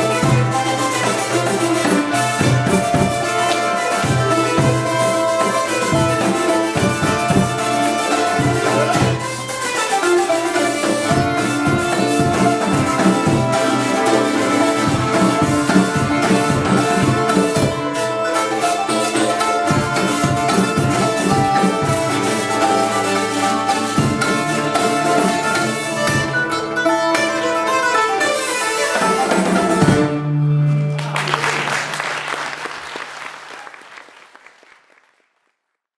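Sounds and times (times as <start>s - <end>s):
drum strikes: 0.0s - 30.2s
nyckelharpa: 0.0s - 31.2s
hurdy-gurdy: 0.0s - 32.0s.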